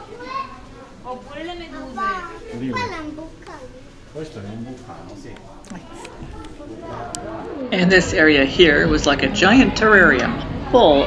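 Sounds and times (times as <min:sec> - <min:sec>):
child chattering: 0:01.8 - 0:03.9, 0:05.7 - 0:07.6.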